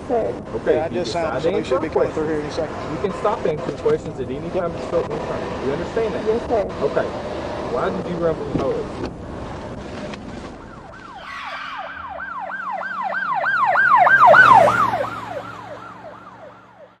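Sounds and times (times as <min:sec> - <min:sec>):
police siren yelping: 0:10.5 - 0:17.0.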